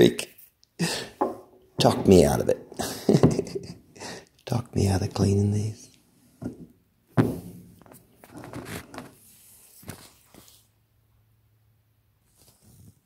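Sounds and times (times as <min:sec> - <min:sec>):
objects thunking on wooden table: 0:01.2 - 0:02.3, 0:03.1 - 0:03.7, 0:06.4 - 0:08.0
person laughing: 0:02.8 - 0:04.2.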